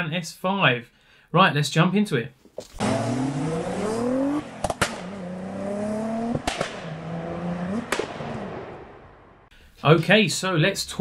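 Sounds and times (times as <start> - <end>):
car engine accelerating: 2.6 - 9.5
sharp crack on upshift: 4.5 - 5.2, 6.3 - 7.0, 7.7 - 8.8.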